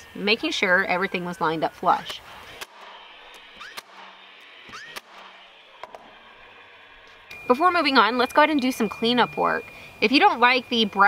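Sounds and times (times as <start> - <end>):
nailer motor whir and snap: 1.9 - 7.5.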